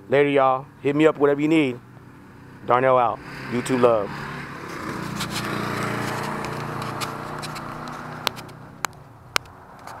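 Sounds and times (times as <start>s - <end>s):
engine drone: 0.0s - 10.0s.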